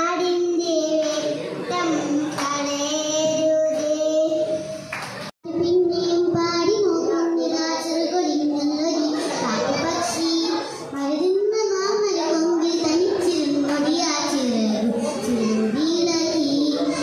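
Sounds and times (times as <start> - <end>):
girl singing into microphone: 0.0 - 4.9, 5.5 - 17.0.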